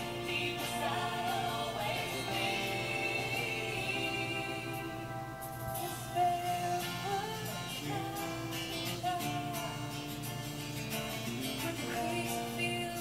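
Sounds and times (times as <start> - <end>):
woman singing: 0.0 - 10.2, 11.2 - 13.0
instrumental accompaniment: 0.0 - 13.0.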